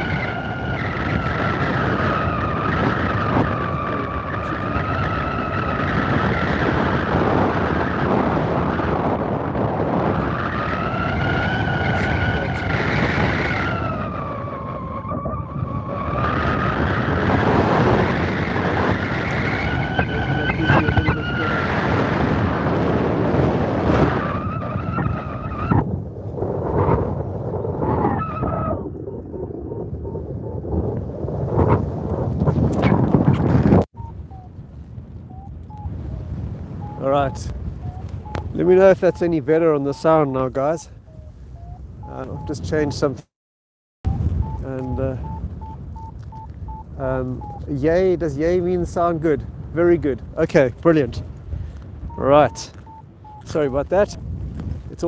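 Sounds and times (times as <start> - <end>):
wind rushing over microphone: 0.0 - 43.3, 44.0 - 55.0
whistling tone rising and falling: 10.2 - 21.6, 33.9 - 34.6, 35.3 - 43.1, 44.1 - 47.8, 52.1 - 53.8.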